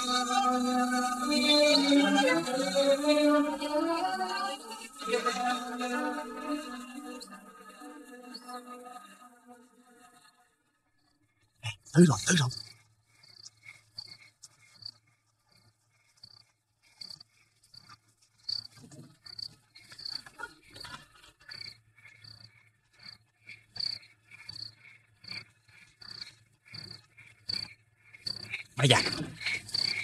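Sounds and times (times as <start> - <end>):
crickets chirping: 12.3 - 30.0.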